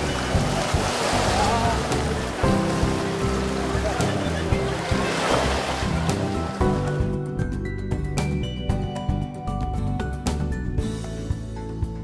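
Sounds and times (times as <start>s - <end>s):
sea surf washing: 0.0s - 7.1s
background music: 0.0s - 12.0s.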